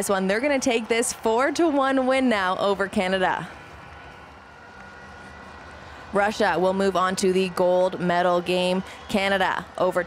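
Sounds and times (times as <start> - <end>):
crowd murmur: 2.8 - 10.0.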